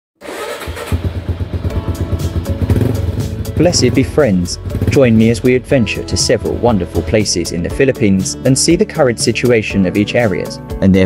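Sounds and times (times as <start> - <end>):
motorcycle engine running: 0.2 - 7.3.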